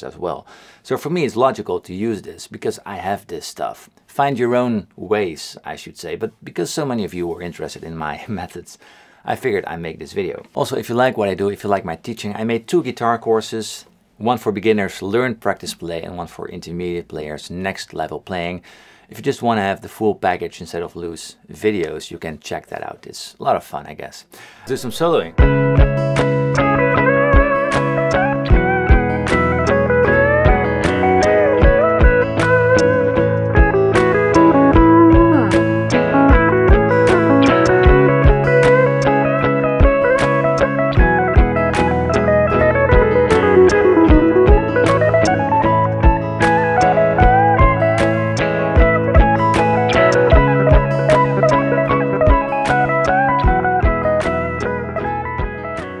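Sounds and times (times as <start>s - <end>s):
bass line: 24.7s - 56.0s
looped guitar chords: 24.7s - 56.0s
percussive beat: 24.8s - 39.1s, 39.8s - 42.0s, 42.7s - 54.4s, 55.4s - 55.7s
electric guitar lead solo: 24.8s - 56.0s.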